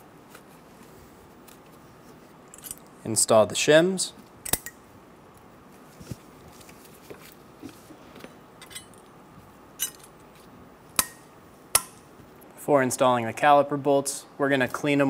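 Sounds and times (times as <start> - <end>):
metal clips snapping on: 4.4 - 4.8.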